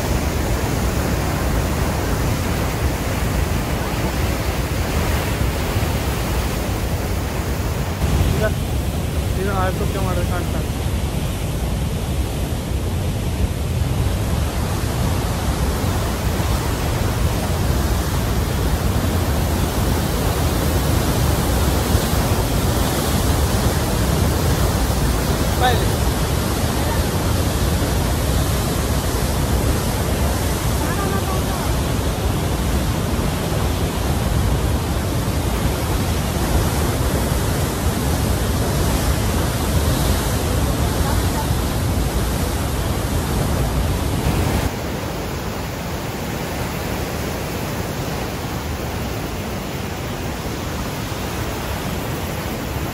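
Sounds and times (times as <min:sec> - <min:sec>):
white water rushing: 0:00.0 - 0:52.9.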